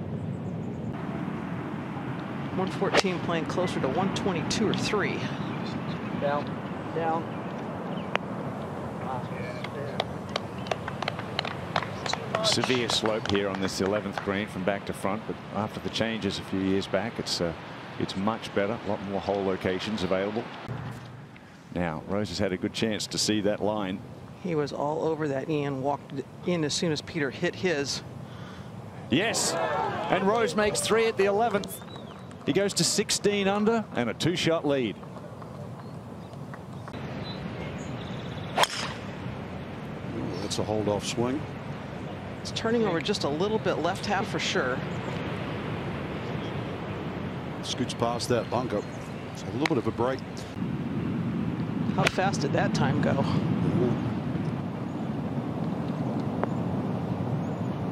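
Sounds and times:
outdoor background hiss: 0.0s - 57.9s
golf club striking ball: 38.4s - 39.1s.

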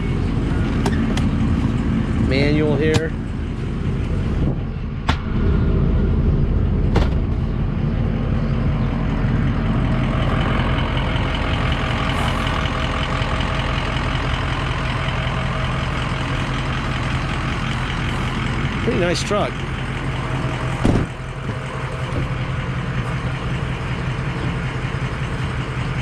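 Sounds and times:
diesel engine idling: 0.0s - 26.0s.

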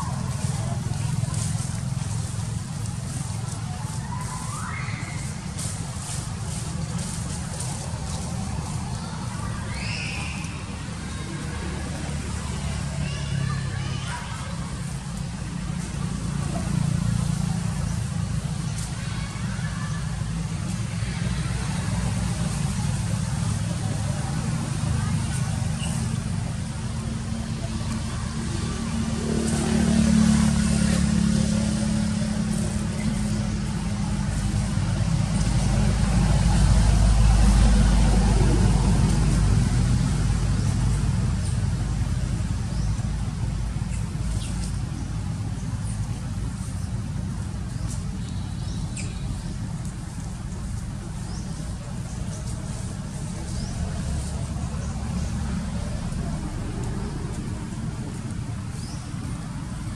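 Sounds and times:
traffic rumble: 0.0s - 59.9s
vehicles passing: 0.0s - 59.9s.

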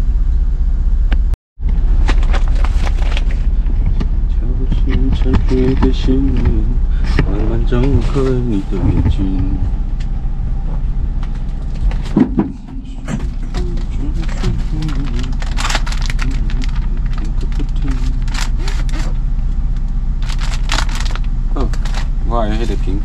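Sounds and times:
boat engine idling: 1.6s - 23.0s
plastic packaging crinkling: 2.0s - 3.5s, 13.3s - 19.2s, 20.2s - 22.2s.

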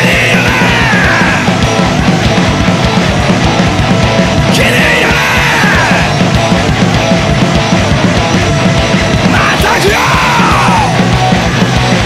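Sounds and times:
person yelling vocals: 0.0s - 1.5s, 4.6s - 6.1s, 9.3s - 11.0s
punk metal band playing: 0.0s - 12.0s.

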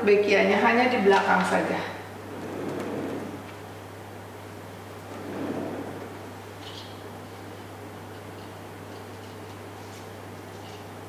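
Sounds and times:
steady low hum: 1.6s - 7.9s.

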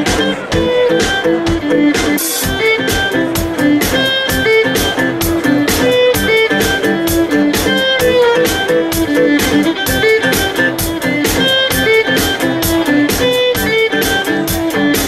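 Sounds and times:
drum kit beat: 0.0s - 15.0s
fiddle: 0.0s - 15.0s.

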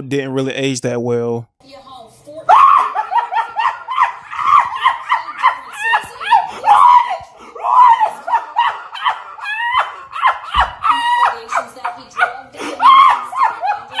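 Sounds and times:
laughing: 2.5s - 14.0s.

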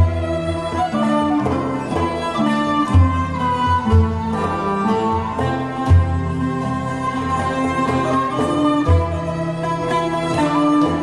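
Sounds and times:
bowed fiddles: 0.0s - 11.0s
plucked lutes: 0.0s - 11.0s.

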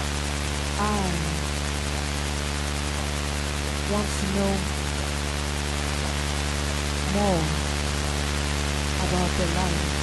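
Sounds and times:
electronic drone of low tones: 0.0s - 10.0s.

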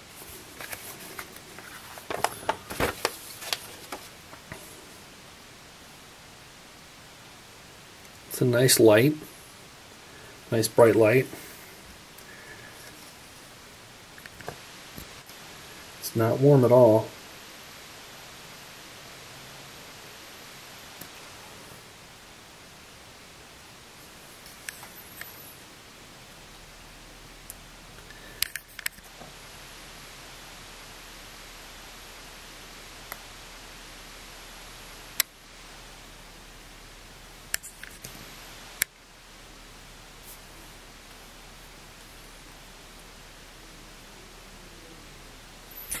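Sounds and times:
room tone hiss: 0.0s - 46.0s
hands rustling: 0.1s - 4.6s.

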